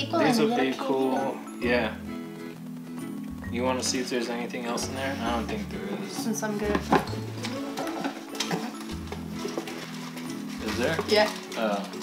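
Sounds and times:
background music with bass line: 1.5s - 11.2s
rustling in cardboard crate: 7.3s - 12.0s.

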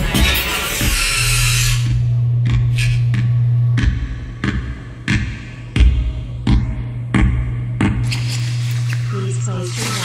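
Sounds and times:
low electronic hum: 0.1s - 10.0s.

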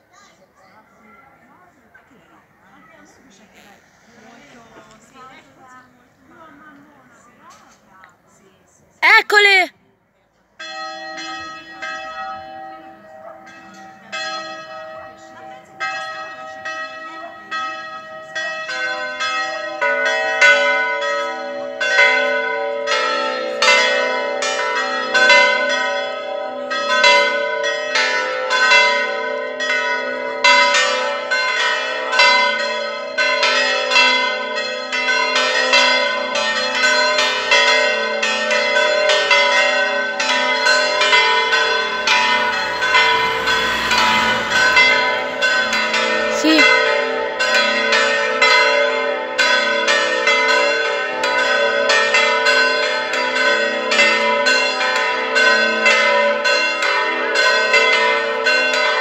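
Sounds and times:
church bells ringing: 10.6s - 59.0s.

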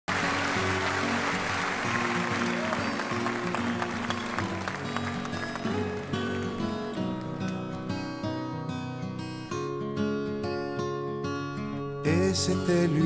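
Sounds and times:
audience applause: 0.1s - 7.8s.

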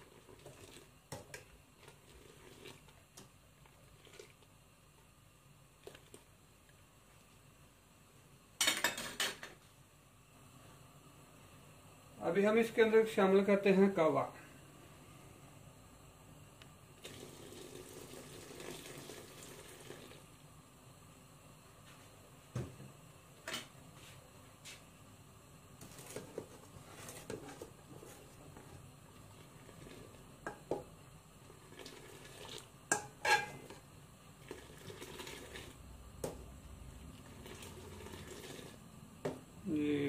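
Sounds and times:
liquid pouring: 17.0s - 20.2s, 31.5s - 32.7s, 34.4s - 35.8s, 37.1s - 38.8s.

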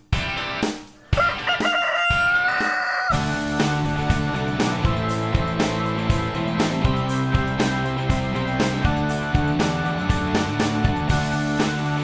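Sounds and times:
drum beat: 0.0s - 12.0s
rooster crowing: 1.0s - 3.3s.

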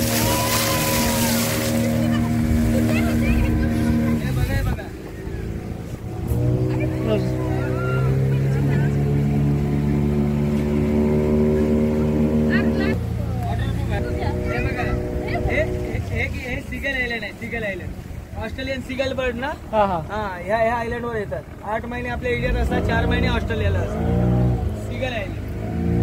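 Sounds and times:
motorboat engine running: 0.0s - 18.4s, 19.0s - 26.0s.

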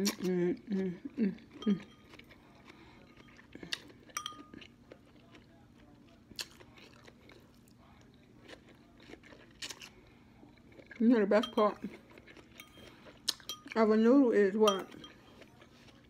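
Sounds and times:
soft chewing noodles: 0.0s - 13.9s, 14.8s - 16.0s.

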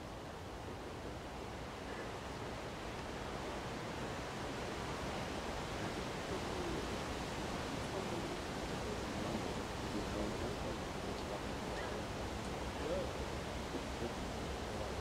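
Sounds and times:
faint distant voices: 0.0s - 15.0s
rushing outdoor background noise: 0.0s - 15.0s.

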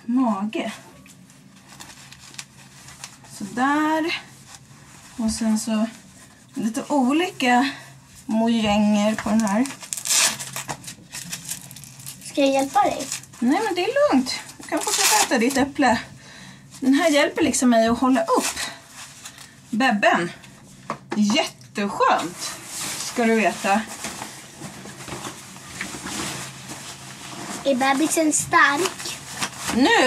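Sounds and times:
low steady hum: 0.0s - 30.0s
faint rustling and handling noises: 0.5s - 30.0s
velcro strap ripped open: 9.8s - 12.2s
faint rustling: 22.0s - 30.0s.

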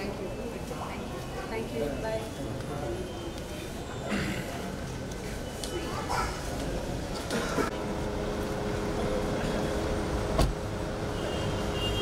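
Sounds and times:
street traffic: 0.0s - 12.0s
car door shutting: 10.3s - 10.6s.

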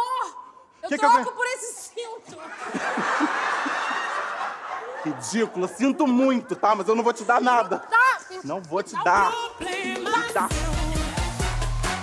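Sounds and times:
audience laughing: 2.4s - 6.4s.

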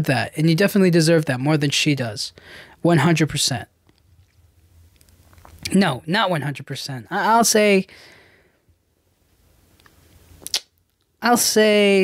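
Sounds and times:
sharp mouth click: 10.4s - 10.7s.

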